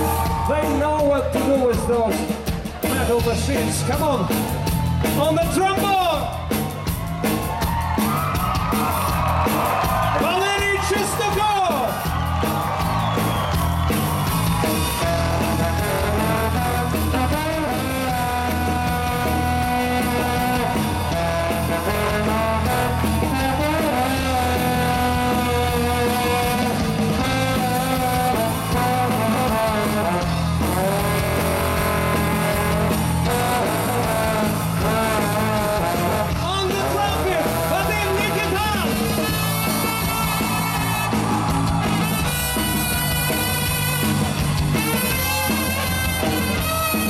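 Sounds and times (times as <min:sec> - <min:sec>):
ska-rock band playing: 0:00.0 - 0:47.0
trombone solo: 0:15.0 - 0:36.4, 0:42.0 - 0:47.0.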